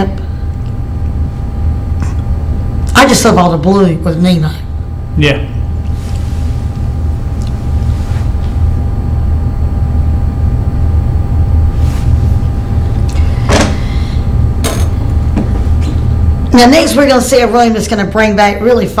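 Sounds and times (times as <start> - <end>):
faint steady whine: 0.0 - 19.0.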